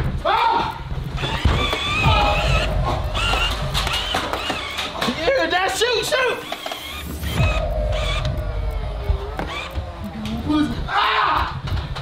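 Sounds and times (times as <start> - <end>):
door creaking on hinges: 0.8 - 12.0
low rumble: 1.8 - 5.4, 7.0 - 10.9.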